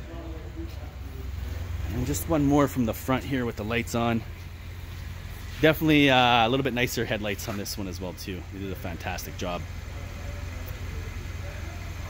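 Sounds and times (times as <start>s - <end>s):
faint voices: 0.0s - 12.0s
low droning hum: 0.0s - 12.0s.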